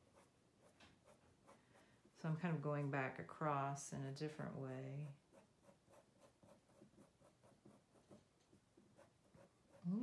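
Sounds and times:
marker scratching on paper: 0.0 - 1.8, 4.9 - 10.0.

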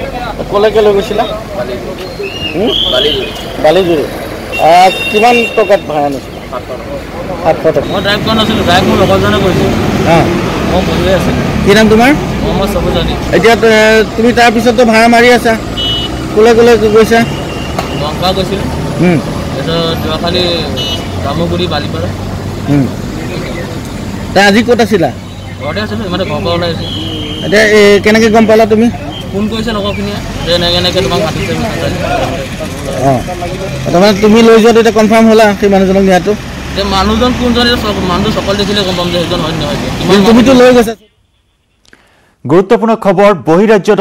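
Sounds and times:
street traffic noise: 0.0 - 44.0.

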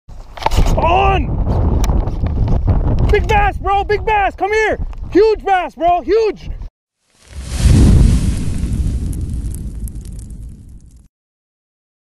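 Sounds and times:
deep rumbling boom: 7.3 - 11.1.

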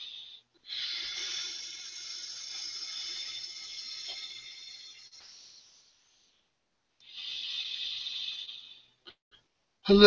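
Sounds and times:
man breathing deeply: 0.0 - 9.2.

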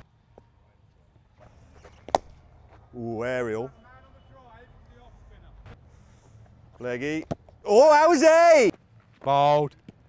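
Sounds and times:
cricket bat striking ball: 1.8 - 2.4.

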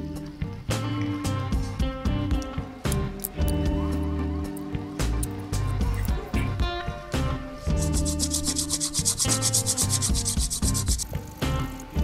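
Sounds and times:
sanding cloth scratching metal: 7.7 - 11.1.

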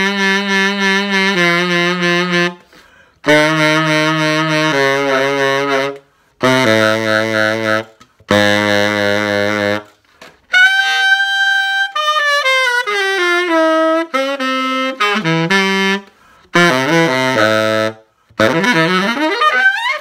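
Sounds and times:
tenor saxophone phrases: 0.0 - 2.6, 3.2 - 9.9, 10.5 - 20.0.

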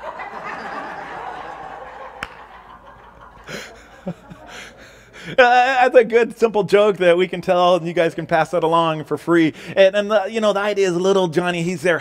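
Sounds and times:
short breathy laugh: 3.4 - 5.4.

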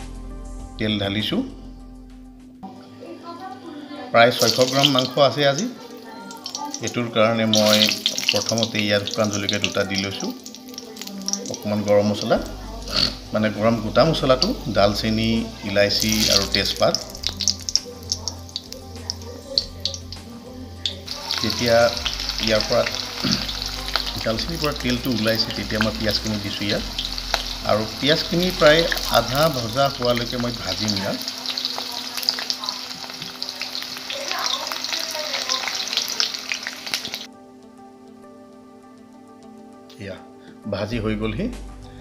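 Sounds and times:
spices frying in oil: 4.3 - 37.3
crackles and pops: 16.1 - 20.3.

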